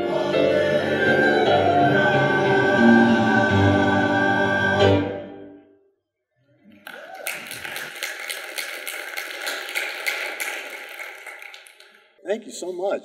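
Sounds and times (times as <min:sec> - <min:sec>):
congregation applauding: 0:06.6 - 0:12.6.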